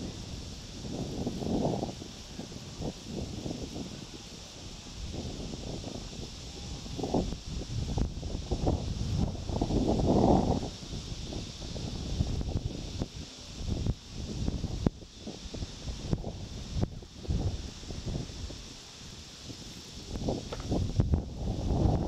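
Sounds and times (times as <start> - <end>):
high-pitched background hiss: 0.0 - 22.0
wind gusting on microphone: 0.0 - 22.0.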